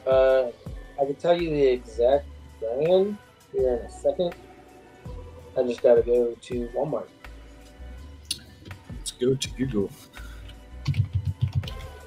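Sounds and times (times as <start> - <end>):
typing on computer keyboard: 10.8 - 11.9.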